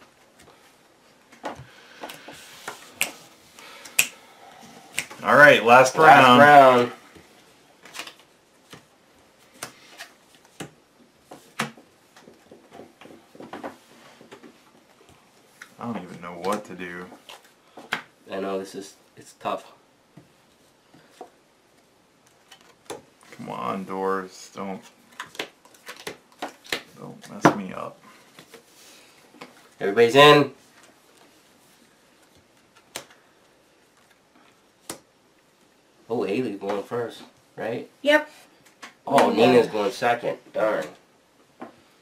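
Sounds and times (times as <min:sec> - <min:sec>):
playing cards clicking and tapping: 0:01.3 - 0:04.2, 0:25.1 - 0:27.7, 0:32.2 - 0:33.2, 0:34.8 - 0:35.1.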